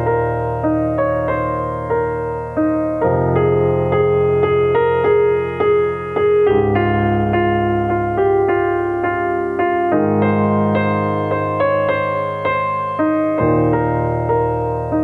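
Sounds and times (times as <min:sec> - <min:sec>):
grand piano playing slow piece: 0:00.0 - 0:15.0.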